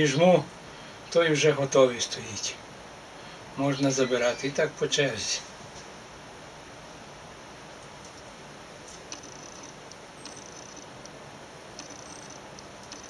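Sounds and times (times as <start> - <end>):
faint clicks: 7.8 - 8.3, 8.9 - 13.0
high-pitched squeaks: 9.1 - 10.9, 11.8 - 13.0.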